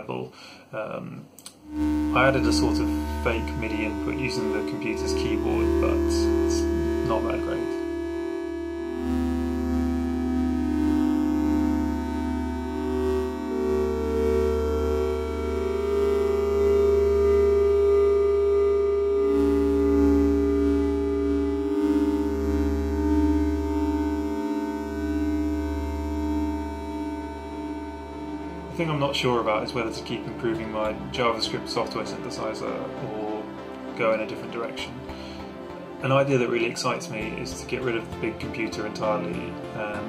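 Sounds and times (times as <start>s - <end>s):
steady low hum: 1.2s - 40.0s
synthesizer playing long held notes: 1.5s - 40.0s.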